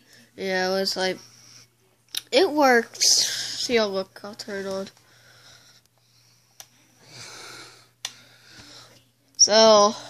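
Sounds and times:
soft breath: 0:05.0 - 0:09.1.

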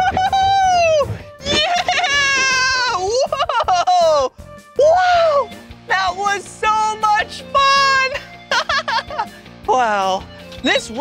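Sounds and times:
background music: 0:00.0 - 0:11.0
man exclaiming and whooping: 0:00.7 - 0:05.5.

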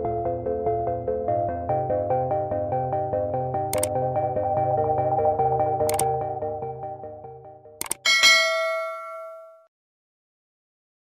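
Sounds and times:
bell-like ding: 0:08.0 - 0:09.7.

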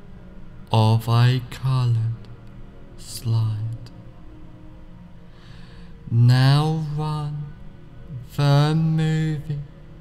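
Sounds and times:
man speaking in slow chant: 0:00.6 - 0:02.4, 0:03.0 - 0:03.9, 0:06.1 - 0:09.9.

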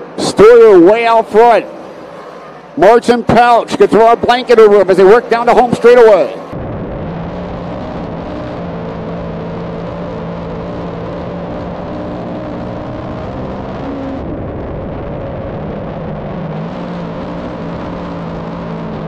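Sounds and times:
race car engine running hard: 0:00.0 - 0:19.0
road and wind noise: 0:00.0 - 0:19.0.

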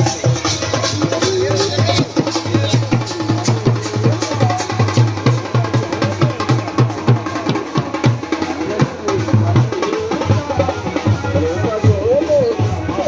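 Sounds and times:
drums beating steady rhythm: 0:00.0 - 0:13.0.

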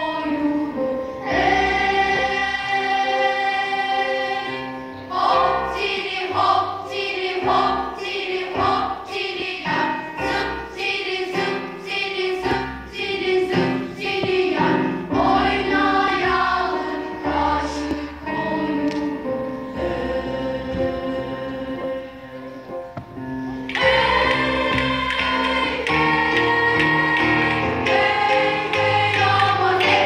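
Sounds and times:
children's choir singing: 0:00.0 - 0:30.0.

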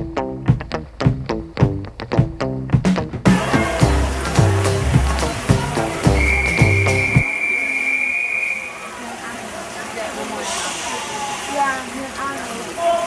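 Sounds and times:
background music: 0:00.0 - 0:07.2
long whistle blast: 0:06.0 - 0:08.9.

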